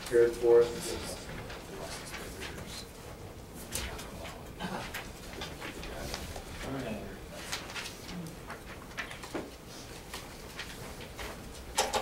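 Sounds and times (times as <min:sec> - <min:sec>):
low room hum: 0:00.0 - 0:12.0
paper rustling: 0:00.1 - 0:11.7.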